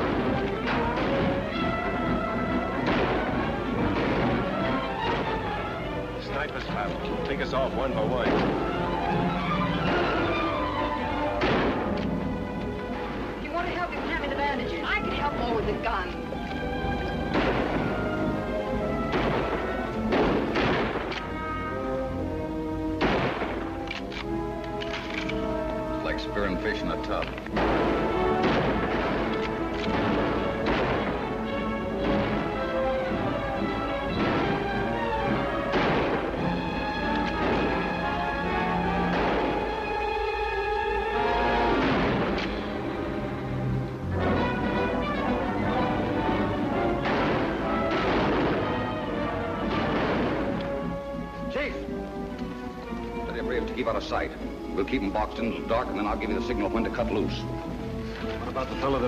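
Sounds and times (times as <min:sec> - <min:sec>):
gunshots: 0:00.0 - 0:12.3, 0:17.2 - 0:22.0, 0:22.9 - 0:25.6, 0:26.9 - 0:40.4, 0:41.2 - 0:43.0, 0:44.1 - 0:51.7
orchestral film score: 0:00.0 - 0:59.0.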